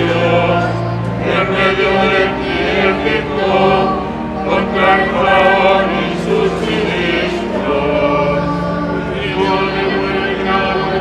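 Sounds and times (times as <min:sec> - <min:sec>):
choir singing long notes: 0:00.0 - 0:11.0.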